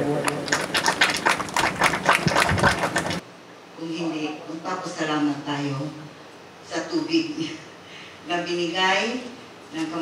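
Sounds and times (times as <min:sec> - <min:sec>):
group applauding: 0:00.2 - 0:03.2.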